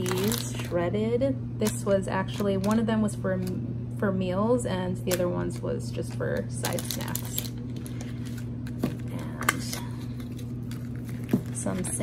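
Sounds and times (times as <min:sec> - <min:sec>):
plastic pack crinkling: 0:00.0 - 0:00.8, 0:01.6 - 0:03.6, 0:05.0 - 0:12.0
steady low hum: 0:00.0 - 0:12.0.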